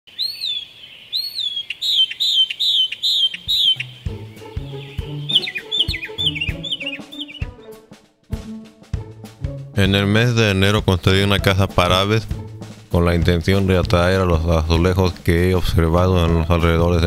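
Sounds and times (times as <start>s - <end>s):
bird chirping whistled notes: 0.1s - 7.8s
music with bass and drum beat: 3.8s - 17.0s.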